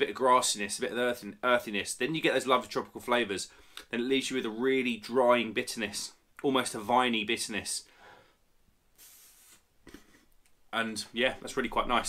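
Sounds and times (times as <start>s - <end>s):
faint breath through nose: 7.9s - 10.3s.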